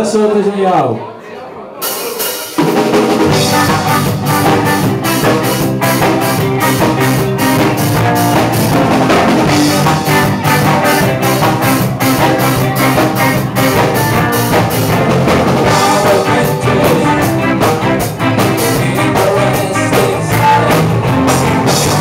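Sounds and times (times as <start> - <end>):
drum kit beat: 1.8 - 22.0
live ska-rock band: 1.8 - 22.0.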